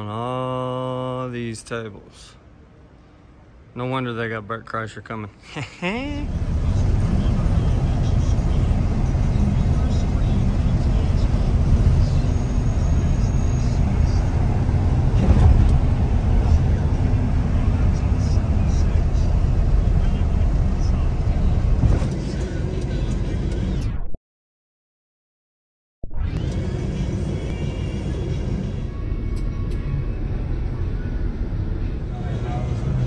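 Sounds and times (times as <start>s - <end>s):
truck engine and road rumble: 0.0s - 24.1s, 26.2s - 33.0s.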